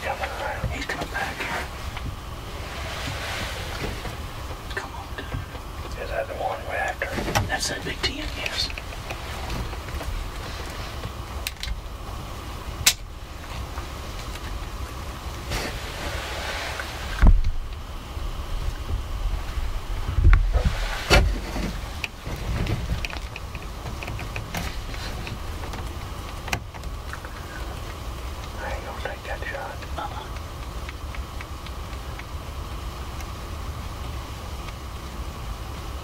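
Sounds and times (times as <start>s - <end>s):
wind rumble on microphone: 7.1s - 29.2s.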